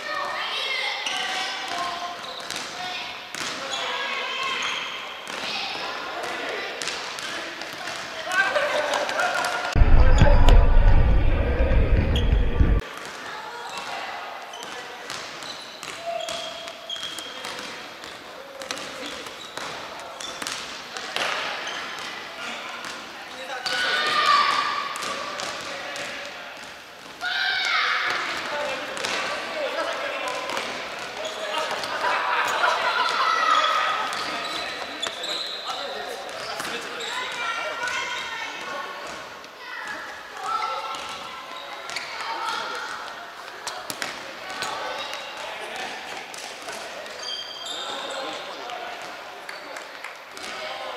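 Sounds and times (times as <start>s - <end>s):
loud low rumble: 9.8s - 12.8s.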